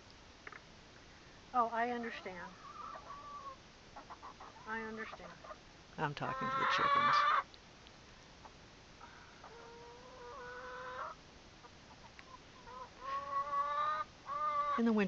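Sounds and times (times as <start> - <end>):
hens calling: 1.6 - 7.5, 8.4 - 15.0.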